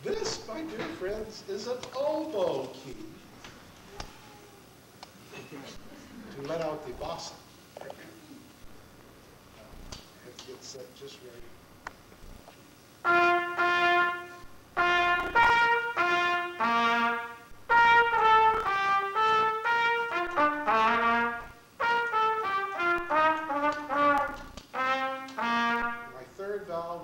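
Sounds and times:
solo trumpet playing: 13.0 - 26.2.

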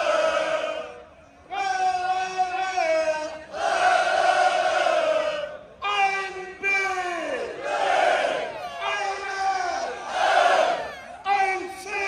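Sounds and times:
crowd shouting together: 0.0 - 1.0, 3.3 - 5.6, 7.4 - 12.0
man shouting into a microphone: 1.5 - 3.5, 5.8 - 7.6, 8.6 - 10.0, 10.8 - 12.0.

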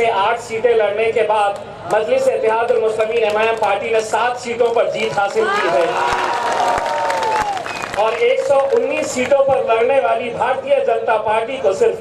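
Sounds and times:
crowd applauding: 5.1 - 9.3.

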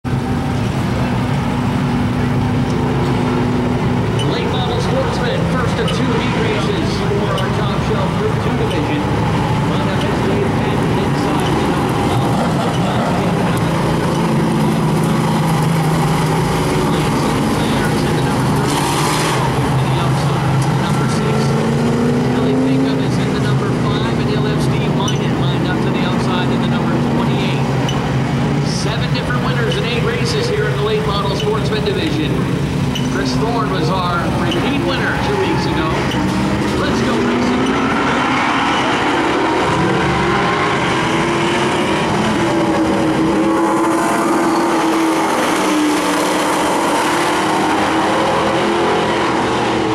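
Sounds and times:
race car engines droning: 0.0 - 49.9.

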